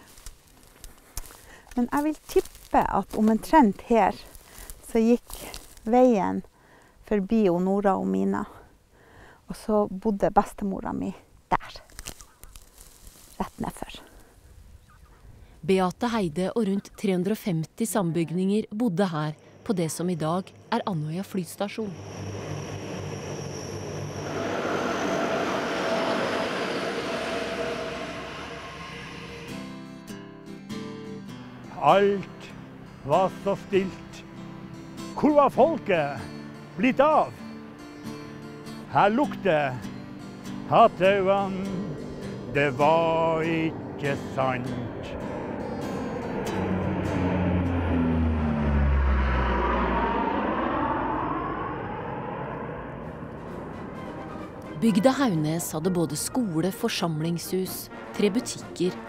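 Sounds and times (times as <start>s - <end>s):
turboprop engines droning: 19.4s - 30.2s, 41.1s - 56.7s
military aircraft flying low: 21.8s - 30.1s, 41.8s - 54.9s.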